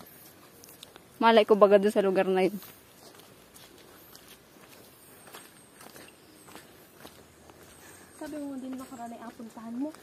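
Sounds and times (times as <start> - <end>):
flip-flop footsteps on stony path: 0.0 - 10.0.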